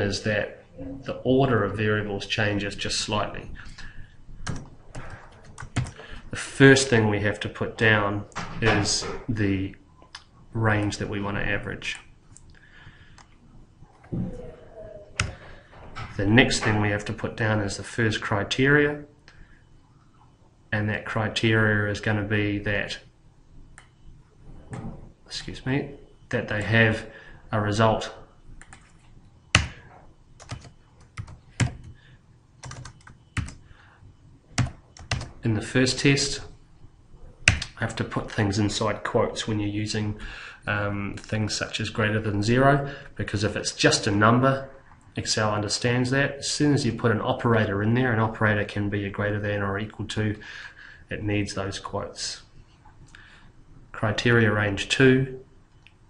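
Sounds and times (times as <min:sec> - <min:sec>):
keyboard typing: 0:04.4 - 0:06.0, 0:15.2 - 0:15.4, 0:28.6 - 0:29.8, 0:30.4 - 0:32.0, 0:32.6 - 0:33.6, 0:34.6 - 0:35.4, 0:37.4 - 0:37.8.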